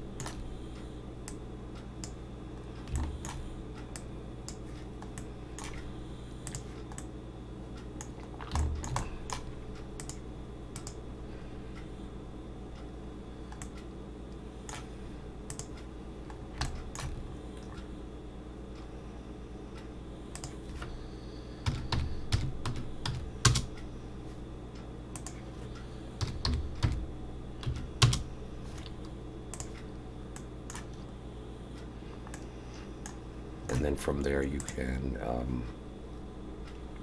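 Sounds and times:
steady low hum: 0:00.0 - 0:37.0
keyboard and mouse clicks: 0:00.2 - 0:00.4, 0:02.8 - 0:05.8, 0:06.4 - 0:07.1, 0:08.0 - 0:10.2, 0:10.8 - 0:11.0, 0:15.5 - 0:15.8, 0:16.6 - 0:17.9, 0:20.4 - 0:20.9, 0:25.2 - 0:25.4, 0:27.6 - 0:31.0.

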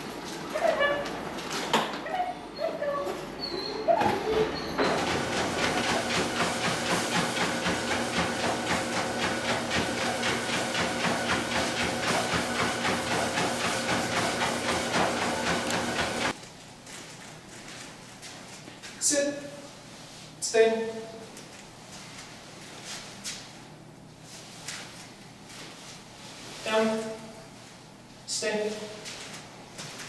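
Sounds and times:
treadmill motor whine: 0:00.0 - 0:16.4
treadmill belt clicking: 0:04.0 - 0:16.4.

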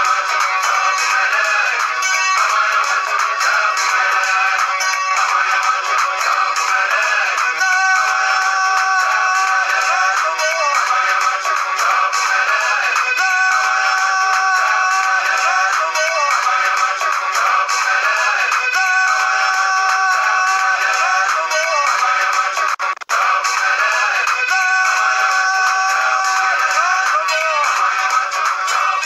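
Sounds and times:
theme song with singing: 0:00.0 - 0:29.0.

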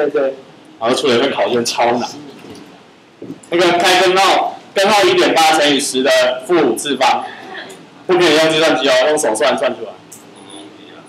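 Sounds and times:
man talking: 0:00.0 - 0:02.3, 0:03.5 - 0:11.0.

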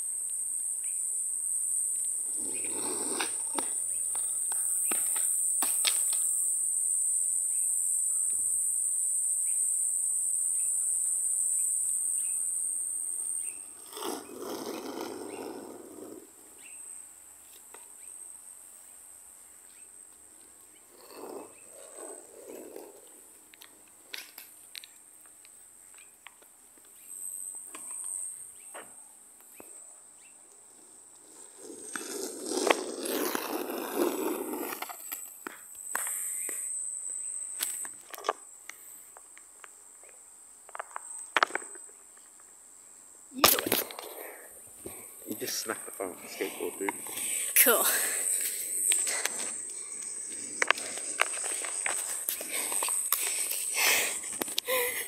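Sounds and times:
high-pitched insect drone: 0:00.0 - 0:15.4, 0:43.3 - 0:55.0
skateboard wheels rolling on asphalt: 0:00.1 - 0:55.0.

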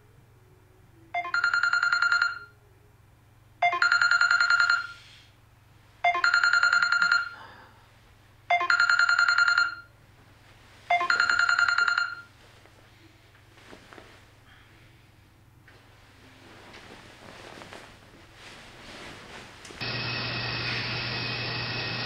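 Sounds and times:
trilling electronic ringtone: 0:01.1 - 0:02.6, 0:03.6 - 0:05.0, 0:06.1 - 0:07.4, 0:08.5 - 0:09.9, 0:10.9 - 0:12.3.

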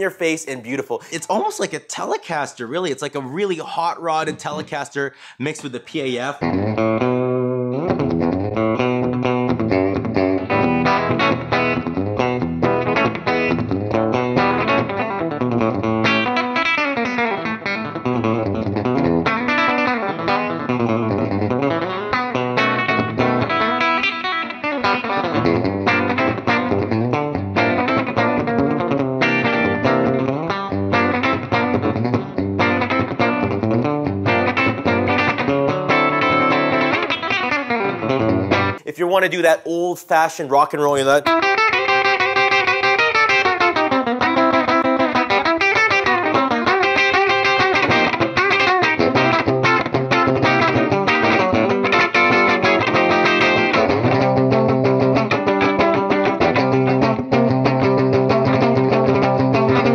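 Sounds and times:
electric guitar picked notes: 0:06.1 - 0:38.8, 0:41.2 - 0:59.9.

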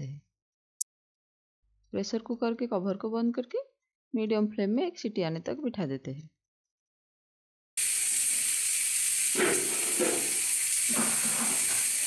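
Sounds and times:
pressure cooker whistle hissing: 0:07.8 - 0:12.0.

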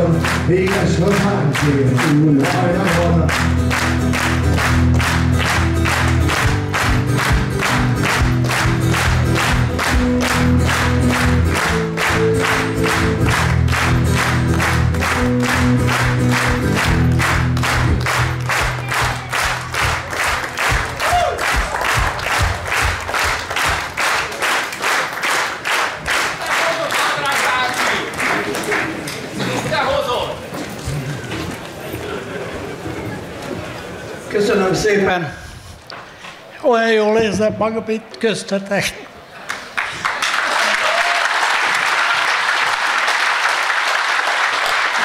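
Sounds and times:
loud music: 0:00.0 - 0:23.9
crowd clapping in time: 0:00.0 - 0:29.9, 0:39.4 - 0:45.0.

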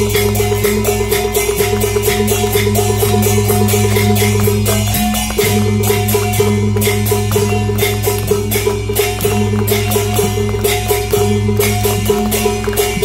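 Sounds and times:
hand cymbals clashing: 0:00.0 - 0:13.0
ringing gongs: 0:00.0 - 0:13.0.

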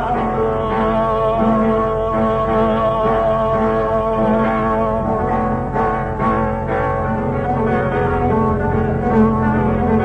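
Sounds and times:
guitar strumming chords: 0:00.0 - 0:10.0.

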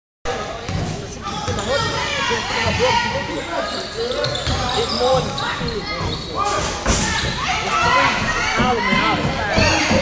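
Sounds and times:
players' voices: 0:00.3 - 0:10.0.

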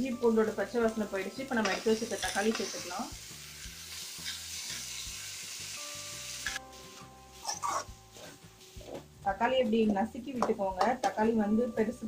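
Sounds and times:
vegetables sizzling in oil: 0:00.0 - 0:12.0.

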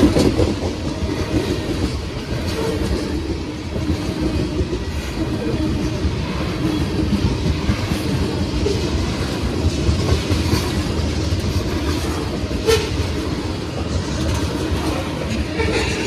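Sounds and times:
train wheels rumbling on rails: 0:00.0 - 0:16.0.

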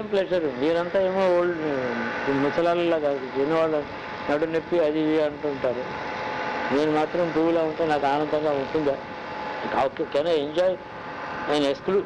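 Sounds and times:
man speaking: 0:00.0 - 0:05.9, 0:06.7 - 0:09.0, 0:09.6 - 0:10.8, 0:11.5 - 0:12.0
steady background noise: 0:00.0 - 0:12.0.

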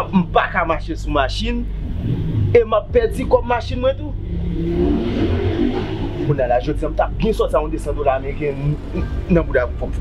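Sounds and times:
car engine revving: 0:00.1 - 0:10.0.

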